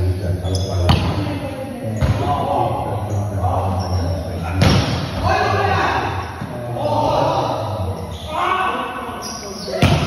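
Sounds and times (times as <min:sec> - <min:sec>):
voices chattering in echoing hall: 0:00.0 - 0:10.0.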